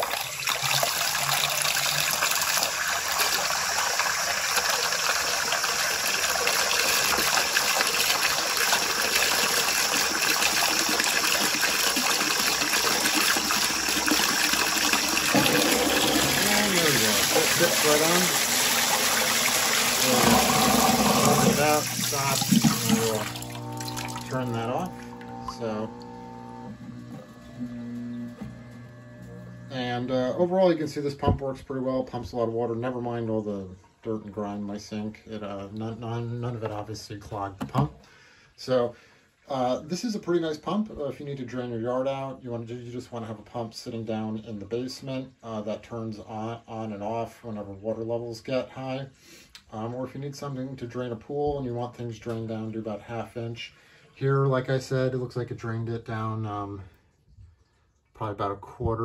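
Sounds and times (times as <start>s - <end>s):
water pouring from tap into sink: 0.0s - 26.5s
electric pump motor humming: 4.4s - 30.4s.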